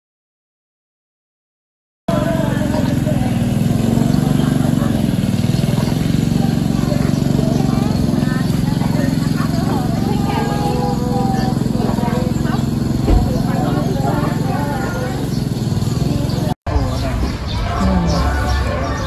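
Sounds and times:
people talking: 2.1s - 19.0s
low rumble: 12.9s - 14.1s.

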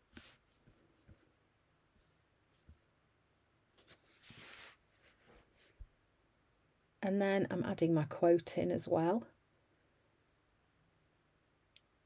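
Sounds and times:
paper and tape rustles and taps: 0.0s - 1.2s.

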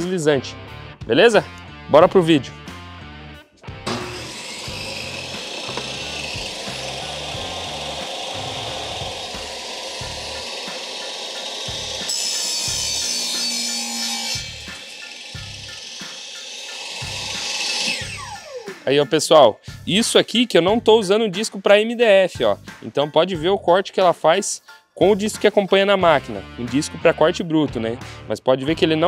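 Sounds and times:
background music: 0.0s - 29.0s
bench saw cutting wood: 3.7s - 18.9s.

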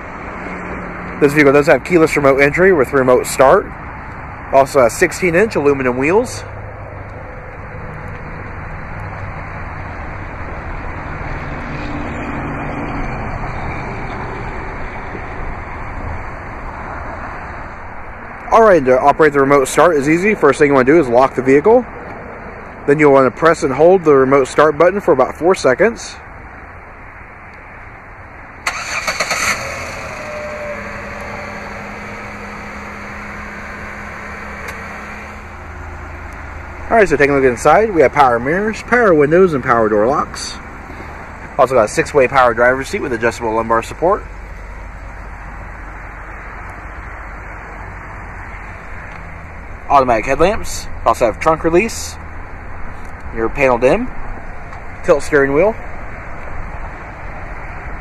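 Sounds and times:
road traffic hum: 0.0s - 58.0s
car engine idling: 26.0s - 56.1s
car engine starter cranking: 28.6s - 33.4s.

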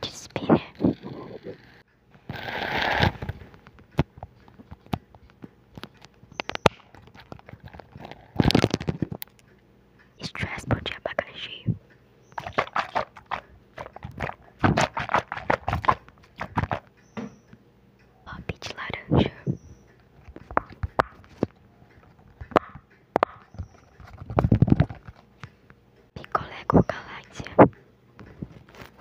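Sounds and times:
soft whispering: 0.0s - 1.7s, 10.2s - 11.8s, 18.2s - 19.7s, 26.2s - 27.8s
crisp clicks and crackles: 2.2s - 9.6s, 28.2s - 29.0s.

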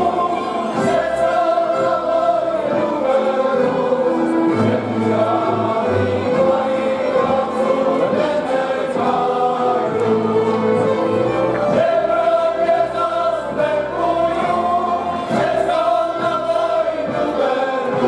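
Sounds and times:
folk string band playing: 0.0s - 18.0s
men singing a folk song: 0.0s - 18.0s.

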